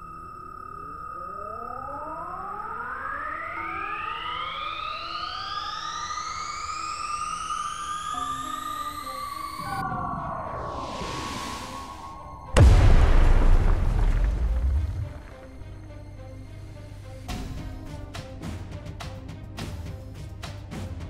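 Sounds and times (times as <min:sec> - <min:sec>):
rushing noise with falling tones: 0:09.7 - 0:15.2.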